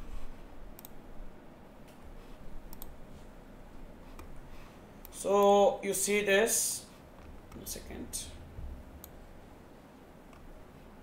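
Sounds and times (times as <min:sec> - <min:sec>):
faint low hum: 0:00.0 - 0:11.0
computer mouse clicks: 0:00.7 - 0:01.0, 0:02.7 - 0:03.0, 0:04.1 - 0:04.4.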